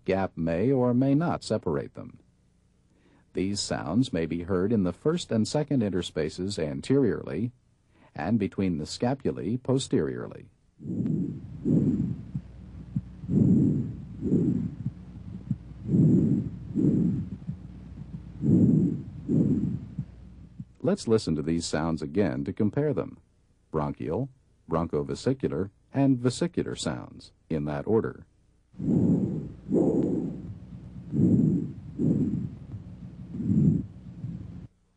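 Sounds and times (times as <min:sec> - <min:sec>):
breath sounds through stethoscope: 0:10.8 - 0:20.8, 0:28.8 - 0:34.7.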